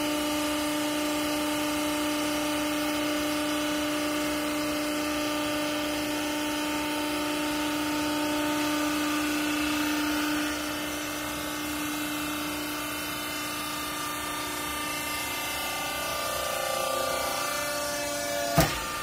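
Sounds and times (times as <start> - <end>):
hydraulic press motor humming: 0.0 - 19.0.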